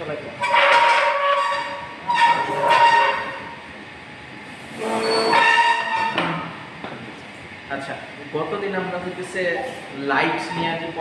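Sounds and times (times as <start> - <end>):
chord horn blasts: 0.4 - 3.5, 4.8 - 6.1.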